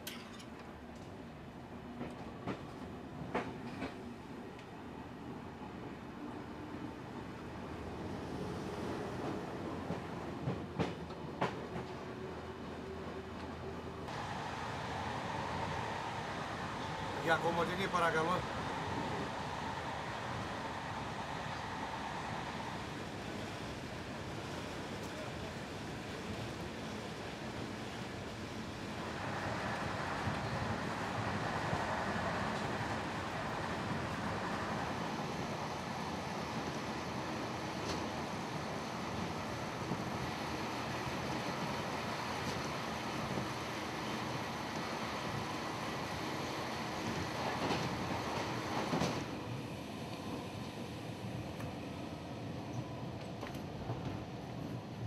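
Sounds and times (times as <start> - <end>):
train rumbling inside carriage: 0.6 - 55.0.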